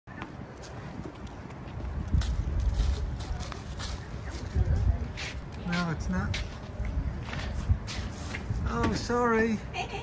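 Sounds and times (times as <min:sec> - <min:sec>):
footsteps on concrete: 0:00.1 - 0:08.5.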